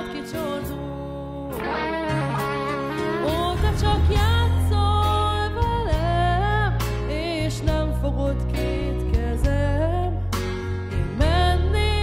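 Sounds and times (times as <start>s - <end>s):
woman singing: 0.0s - 10.4s, 11.0s - 12.0s
backing music with heavy bass: 0.0s - 12.0s.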